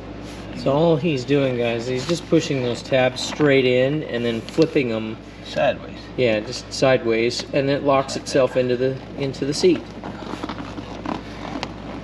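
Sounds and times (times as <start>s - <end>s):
seat cover rustling: 9.0s - 12.0s.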